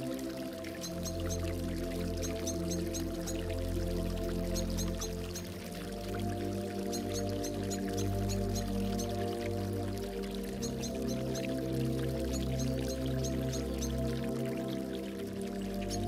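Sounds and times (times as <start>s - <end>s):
gurgling dripping water: 0.0s - 16.0s
soft synthesizer chords: 0.0s - 16.0s.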